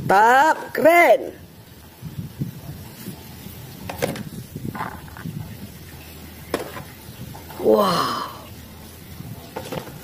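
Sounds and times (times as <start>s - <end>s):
plastic toys being handled: 4.0s - 5.3s.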